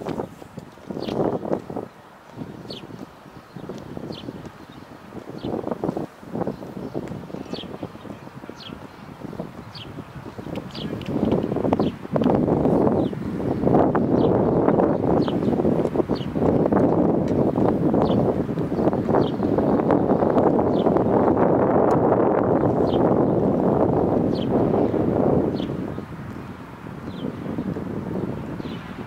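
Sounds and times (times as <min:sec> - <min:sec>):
wind gusting on microphone: 0:00.0 - 0:29.0.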